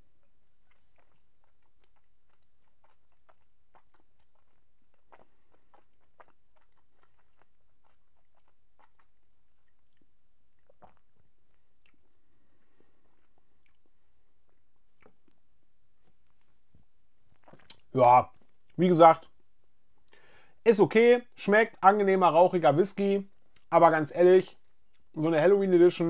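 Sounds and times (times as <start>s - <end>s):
lip smacks and tongue clicks: 0.2s - 12.1s, 13.4s - 13.9s, 17.4s - 18.8s.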